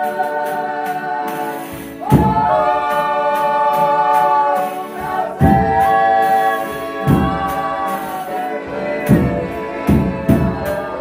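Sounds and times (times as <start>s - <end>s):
accordion: 0.0s - 11.0s
group singing in harmony: 0.0s - 11.0s
guitars: 0.0s - 11.0s
deep drum beats: 1.8s - 11.0s.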